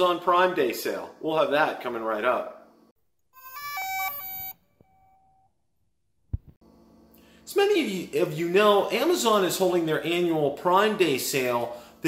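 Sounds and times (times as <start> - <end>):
faint held tone: 3.3 - 6.0
electronic beep tones: 3.4 - 5.5.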